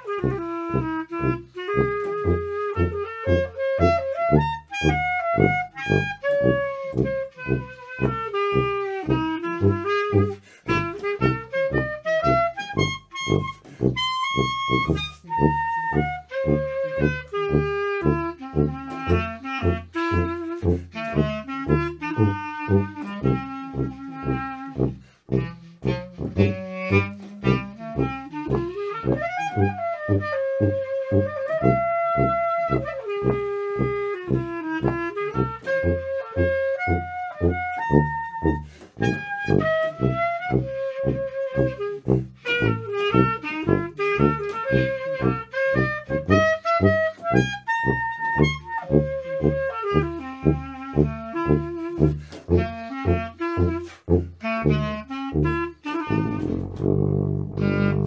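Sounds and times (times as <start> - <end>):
jazz bass line: 0.0 - 58.0
wind instrument sliding melody: 0.0 - 58.0.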